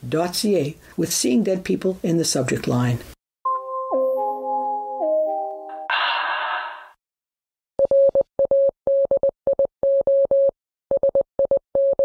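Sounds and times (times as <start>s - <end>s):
morse code beeps: 7.8s - 12.0s.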